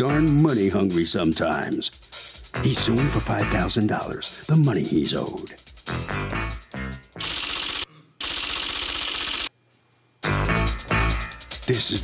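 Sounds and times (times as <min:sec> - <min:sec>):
rapid clicking sound effect: 0:07.2 - 0:09.5.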